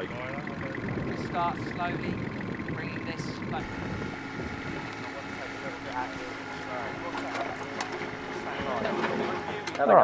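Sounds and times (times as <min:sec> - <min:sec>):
distant people talking: 0:00.0 - 0:10.0
excavator engine running: 0:00.0 - 0:10.0.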